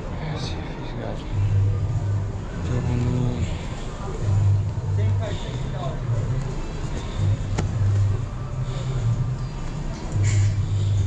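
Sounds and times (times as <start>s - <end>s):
busy indoor market hum: 0.0s - 11.0s
background music with bass: 1.2s - 11.0s.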